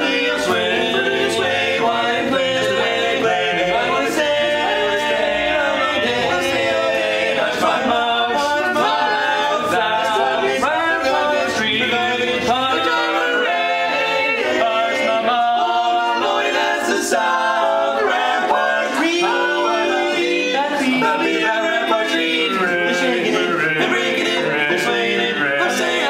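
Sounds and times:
male quartet singing in harmony: 0:00.0 - 0:26.0.

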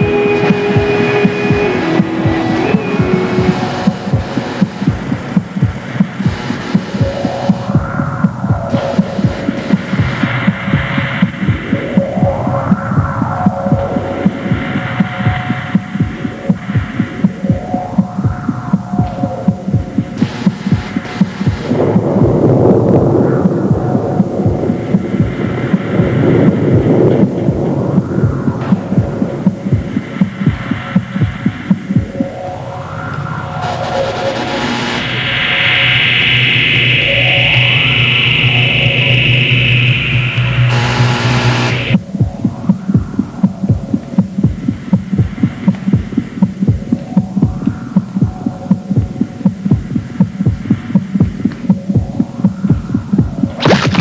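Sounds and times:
rising and falling electronic tones: 0:00.0 - 0:11.1, 0:53.6 - 0:54.0
electronic throbbing pulse: 0:00.0 - 0:54.0.

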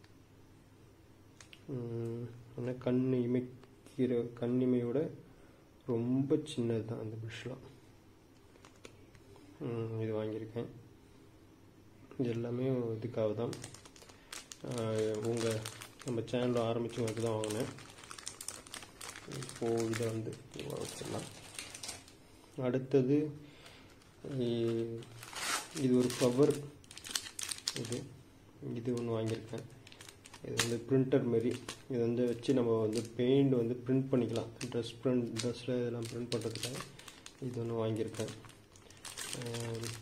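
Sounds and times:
plastic packaging crinkling: 0:08.5 - 0:09.2, 0:13.3 - 0:22.6, 0:23.5 - 0:33.3, 0:34.1 - 0:40.0.

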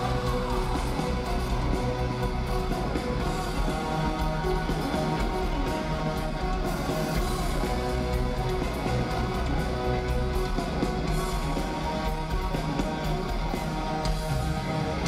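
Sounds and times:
heavy metal band playing live: 0:00.0 - 0:15.0.

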